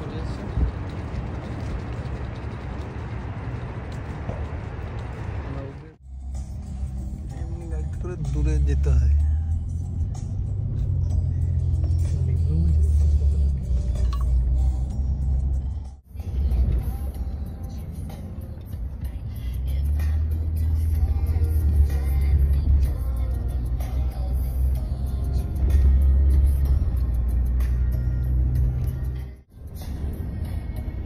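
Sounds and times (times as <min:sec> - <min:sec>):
car road rumble: 0:00.0 - 0:31.0
music in car: 0:06.0 - 0:31.0.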